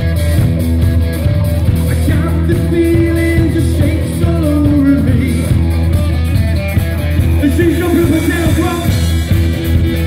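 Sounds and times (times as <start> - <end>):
bass guitar: 0.0 - 10.0
drums: 0.0 - 10.0
electric guitar: 0.0 - 10.0
lead singer singing: 1.9 - 5.6, 7.4 - 9.2.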